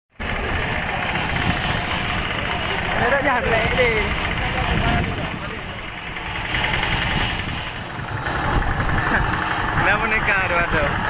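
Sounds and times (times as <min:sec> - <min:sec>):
hand tractor engine chugging: 0:00.2 - 0:11.0.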